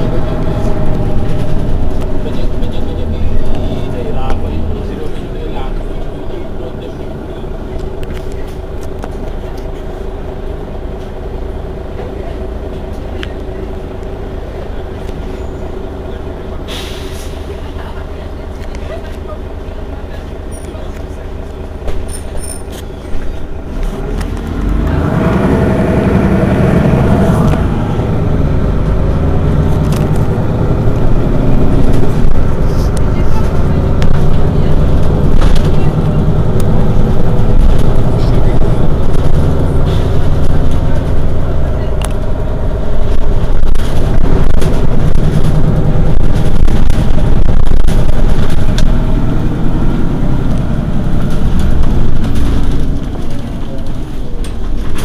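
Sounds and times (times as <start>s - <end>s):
bus diesel engine droning: 0.0s - 55.0s.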